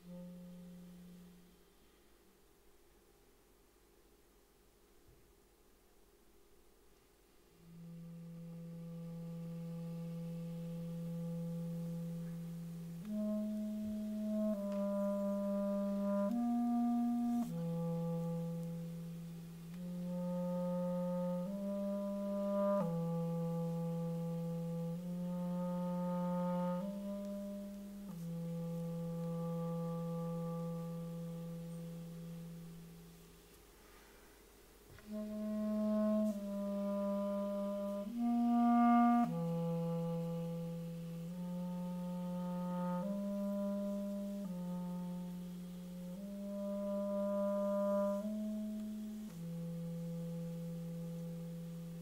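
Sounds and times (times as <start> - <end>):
solo clarinet melody: 0.0 - 2.0, 7.5 - 52.0.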